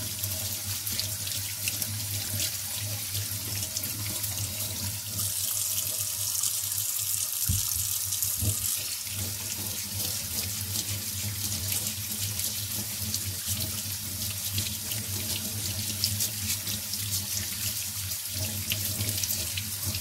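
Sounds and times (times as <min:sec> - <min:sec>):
brush scrubbing potato: 0:00.0 - 0:20.0
tap water running into sink: 0:00.0 - 0:20.0.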